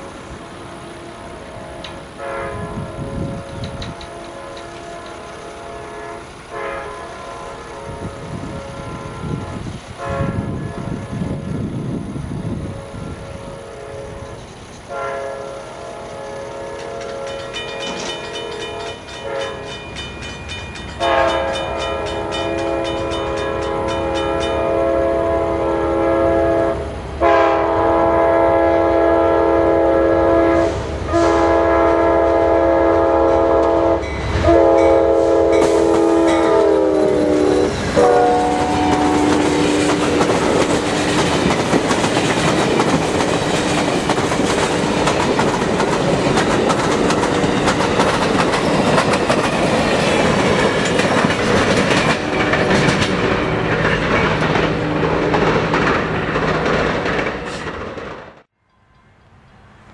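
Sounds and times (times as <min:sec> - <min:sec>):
train horn blasts: 0:00.6 - 0:11.4, 0:12.6 - 0:19.9, 0:21.0 - 0:41.0.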